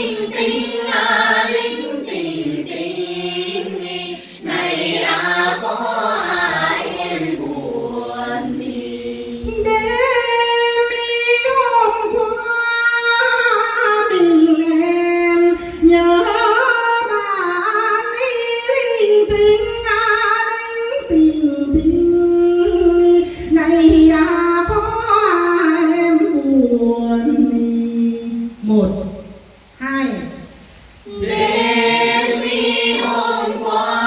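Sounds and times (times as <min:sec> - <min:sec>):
group of voices singing: 0:00.0 - 0:10.2, 0:31.0 - 0:34.0.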